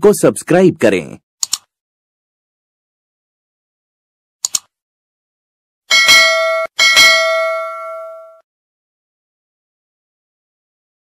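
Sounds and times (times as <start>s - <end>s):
notification bell dinging: 5.9s - 8.4s.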